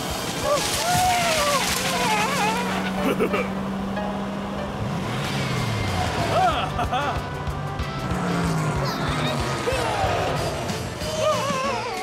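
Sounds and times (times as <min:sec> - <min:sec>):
cartoon go-kart engine humming: 0:00.0 - 0:12.0
character vocal squeaks: 0:01.4 - 0:03.2
background music: 0:01.6 - 0:12.0.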